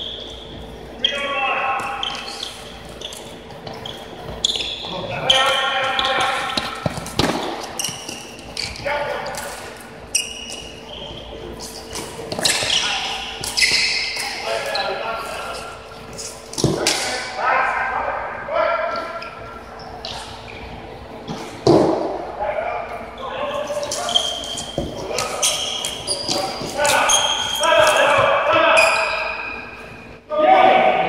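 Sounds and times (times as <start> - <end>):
players calling out: 22.8 - 31.0.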